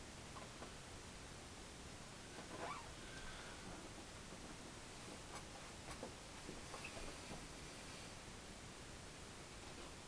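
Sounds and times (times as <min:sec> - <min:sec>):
low room hiss: 0:00.0 - 0:10.0.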